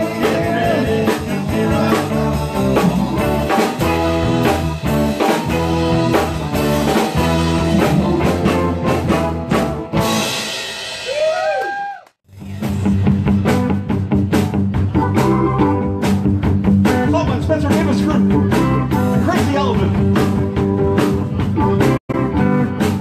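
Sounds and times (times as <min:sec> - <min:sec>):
live rock band playing: 0:00.0 - 0:11.5, 0:12.3 - 0:23.0.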